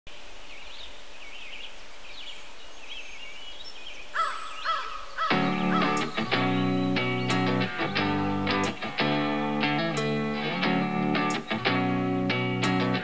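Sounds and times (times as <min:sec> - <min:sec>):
small birds chirping: 0:00.4 - 0:12.9
louder bird calls: 0:01.3 - 0:09.9
electric guitar chord: 0:05.3 - 0:13.0.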